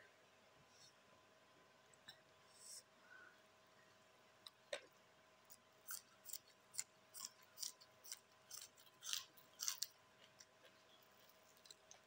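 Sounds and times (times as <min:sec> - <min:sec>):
crunchy chewing of vegetable: 0:05.4 - 0:12.0.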